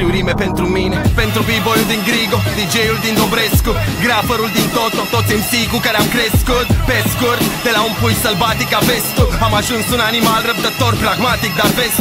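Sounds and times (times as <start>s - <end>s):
deep kick drum: 0.0s - 1.9s, 3.5s - 4.4s, 6.4s - 7.3s, 9.2s - 9.7s
rapping over a beat: 0.0s - 12.0s.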